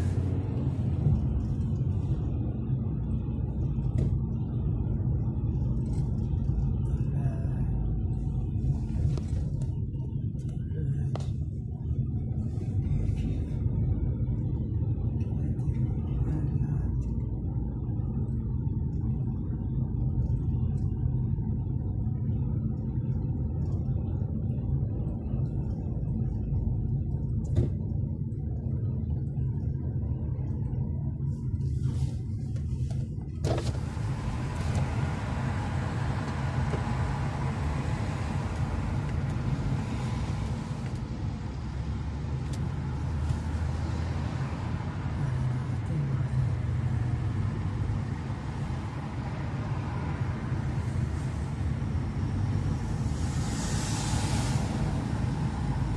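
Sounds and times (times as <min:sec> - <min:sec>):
car engine and tyres rumbling: 0:00.0 - 0:55.9
rushing wind and road noise: 0:00.0 - 0:55.9.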